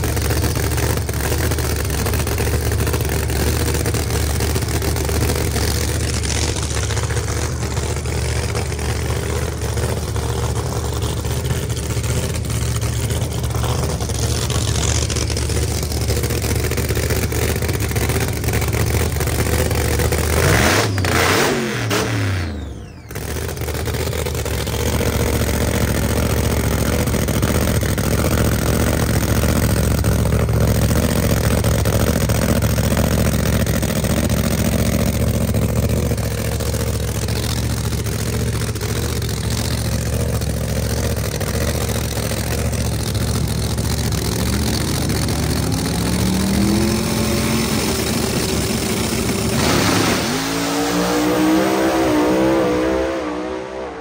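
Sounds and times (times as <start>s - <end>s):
drag car engines revving and idling: 0.0s - 54.0s.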